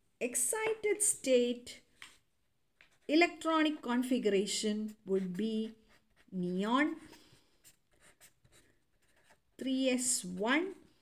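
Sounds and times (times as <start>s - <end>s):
marker scratching on paper: 4.9s - 10.8s.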